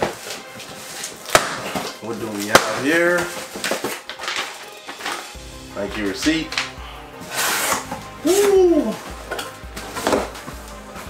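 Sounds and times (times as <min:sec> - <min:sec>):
paper receipt rustling: 0:01.9 - 0:06.8.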